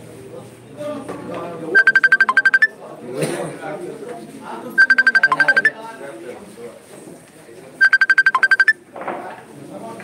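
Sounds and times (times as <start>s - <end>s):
phone ringtone beeps: 1.8s - 2.7s, 4.8s - 5.8s, 7.8s - 8.8s.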